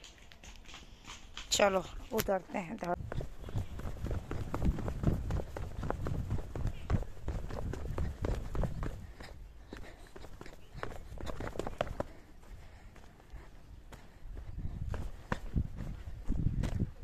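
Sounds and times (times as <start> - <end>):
footsteps on concrete steps: 0.0 - 17.0.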